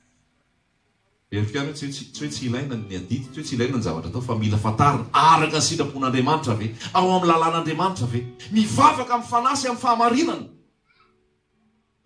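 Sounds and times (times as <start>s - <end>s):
man preaching through microphone: 1.4s - 10.5s.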